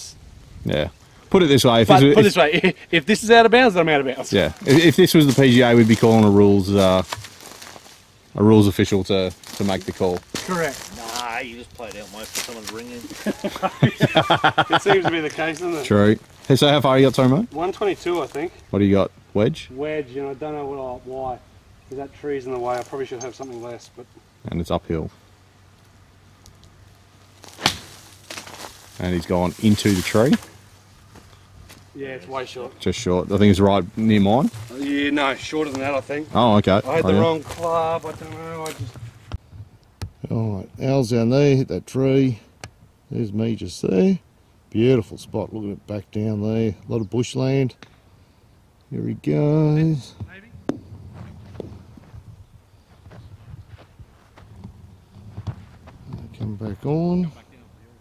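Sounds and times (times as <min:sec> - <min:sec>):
footsteps on grass: 0:04.2 - 0:18.7, 0:22.5 - 0:23.7, 0:26.6 - 0:39.4, 0:50.6 - 0:56.2
golf club striking ball: 0:27.5 - 0:28.4
golf club swish: 0:27.5 - 0:28.5.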